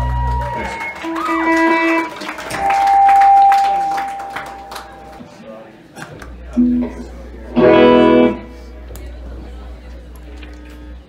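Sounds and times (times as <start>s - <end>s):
electric guitar notes: 0.0s - 5.2s, 6.5s - 9.4s.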